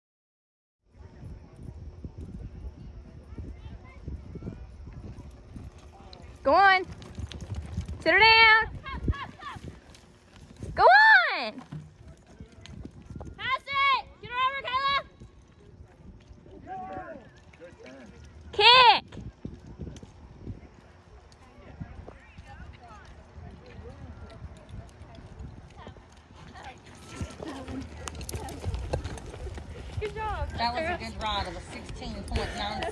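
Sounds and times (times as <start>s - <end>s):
faint voices talking: 0.9s - 32.9s
horse hoofbeats galloping on dirt: 1.4s - 32.9s.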